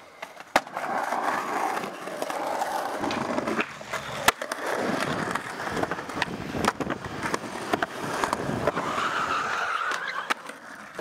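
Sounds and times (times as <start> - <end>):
skateboard skidding slide: 0.0 - 11.0
skateboard wheels rolling on concrete: 0.0 - 11.0.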